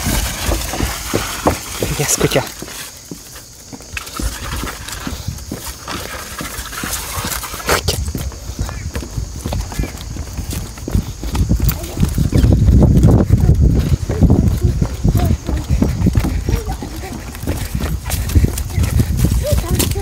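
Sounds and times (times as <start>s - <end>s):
bike wheels rolling over boards: 0.0s - 20.0s
footsteps on wooden boards: 0.0s - 20.0s.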